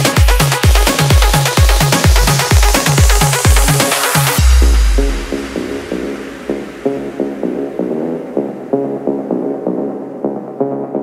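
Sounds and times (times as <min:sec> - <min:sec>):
deep bass: 0:00.0 - 0:11.0
electronic dance music synth riff: 0:00.0 - 0:11.0.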